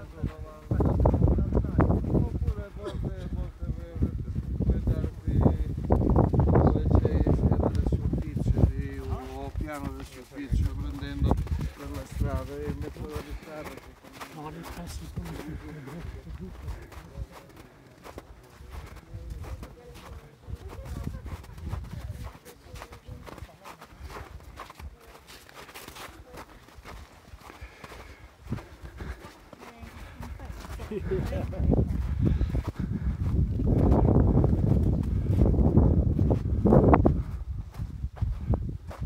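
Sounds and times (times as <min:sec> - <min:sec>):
people talking: 0:00.0 - 0:05.9, 0:06.6 - 0:25.4, 0:29.5 - 0:32.0
footsteps on snow: 0:00.0 - 0:39.0.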